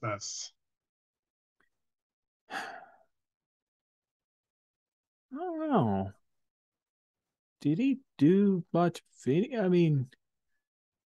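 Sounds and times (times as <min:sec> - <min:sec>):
man sighing: 0:02.5 - 0:03.0.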